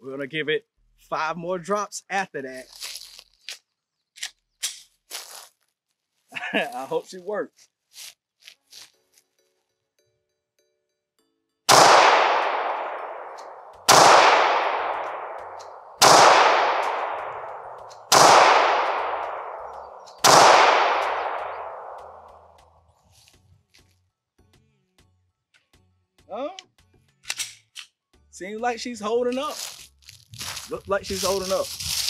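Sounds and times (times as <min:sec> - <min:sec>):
pistol shots: 0:11.7 - 0:22.6.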